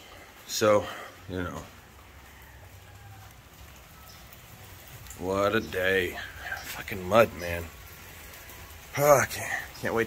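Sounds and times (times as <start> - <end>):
light rain hissing: 0.0 - 10.0.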